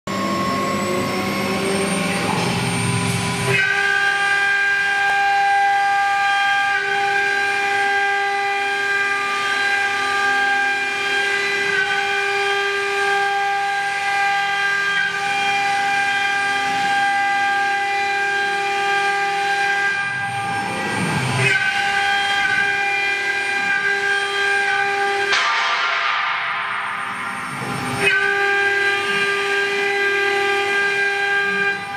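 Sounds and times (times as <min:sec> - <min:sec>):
router cutting into wood: 0:00.1 - 0:26.6, 0:27.2 - 0:31.9
cnc router spindle whine: 0:00.1 - 0:31.9.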